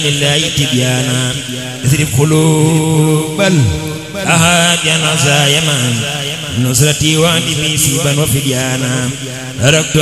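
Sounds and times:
man chanting devotional poem: 0.0s - 10.0s.

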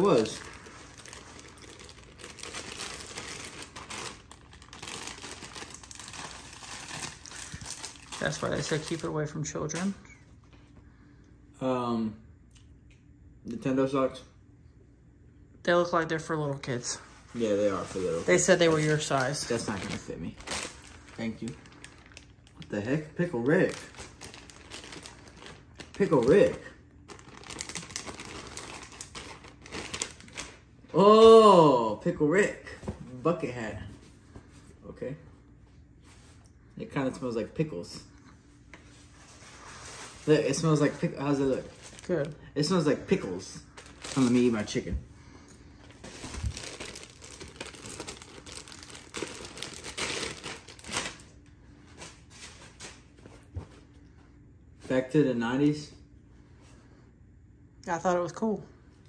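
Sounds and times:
plastic bag crinkling: 0.0s - 9.4s, 17.6s - 30.7s, 40.2s - 44.8s, 45.8s - 51.4s.

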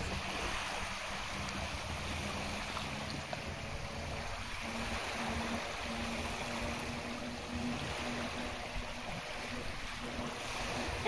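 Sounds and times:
distant jet ski engine drone: 0.0s - 11.0s
small waves lapping: 0.0s - 11.0s
wind buffeting microphone: 0.0s - 11.0s.

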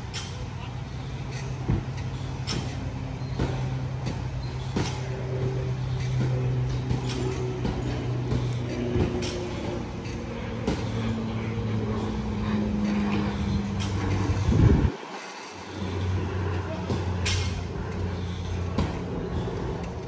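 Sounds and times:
held low tones: 0.0s - 15.0s
low engine-like hum: 0.0s - 20.0s.

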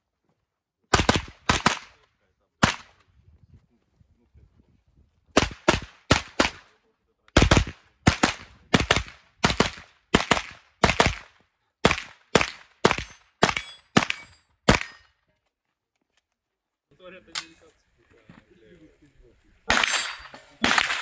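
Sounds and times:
rapid gunshots with echo: 0.9s - 2.0s, 2.6s - 3.0s, 5.4s - 6.8s, 7.4s - 15.0s, 19.7s - 21.0s.

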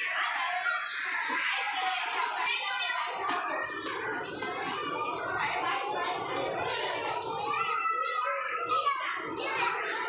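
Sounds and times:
children chattering at play: 0.0s - 10.0s
high child's voice: 0.0s - 10.0s.

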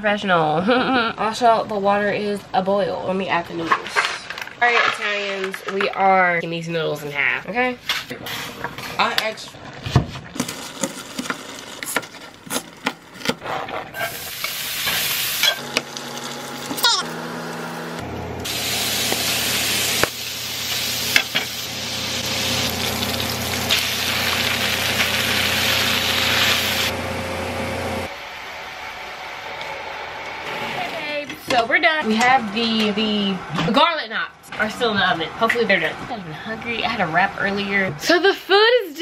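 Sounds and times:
sausage sizzling in frying pan: 14.1s - 16.8s, 18.4s - 26.9s.

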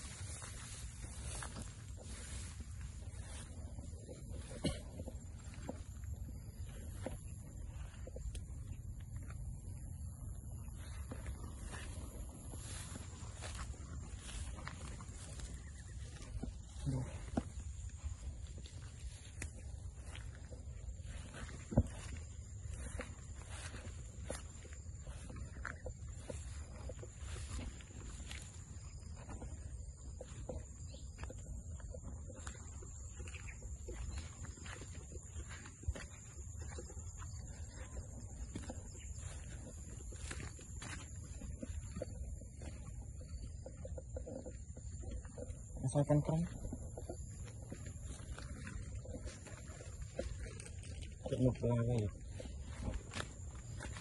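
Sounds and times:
footsteps brushing through grass: 0.0s - 54.0s
low rumble of wind: 0.0s - 54.0s.

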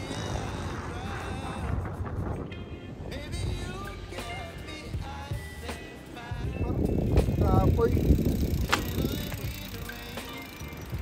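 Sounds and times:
wind rumbling on microphone: 0.0s - 5.5s, 6.2s - 11.0s
background song: 0.0s - 7.4s, 8.6s - 11.0s.

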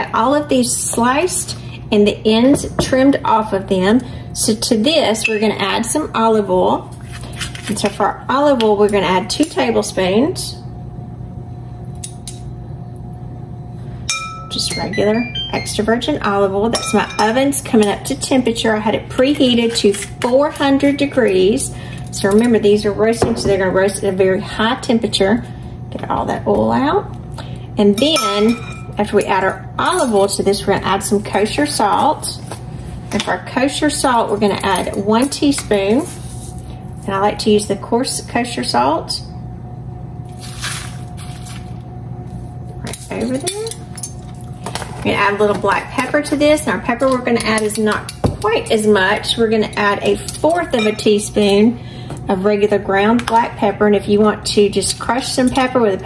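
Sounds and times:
oven fan humming: 0.0s - 56.0s.

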